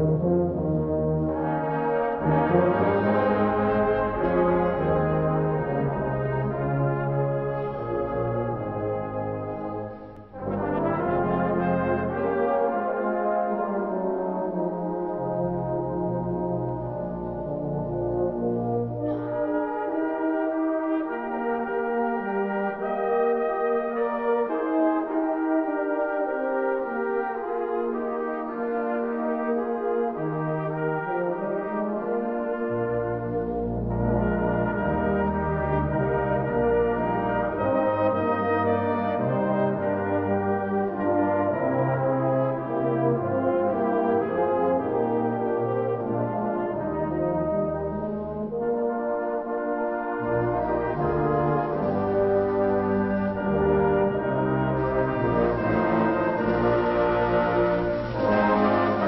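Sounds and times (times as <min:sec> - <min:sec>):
brass band holding chords: 0:00.0 - 0:59.0
low bass brass instruments: 0:00.0 - 0:59.0.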